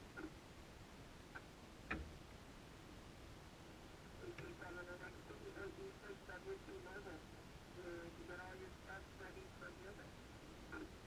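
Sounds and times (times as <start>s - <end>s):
faint voice over radio speaker: 4.2s - 7.2s, 7.8s - 10.9s.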